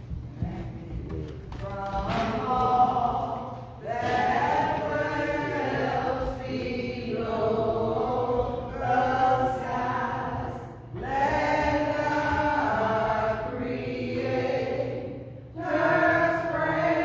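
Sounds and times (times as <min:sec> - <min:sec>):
congregation singing a hymn: 0:00.0 - 0:17.0.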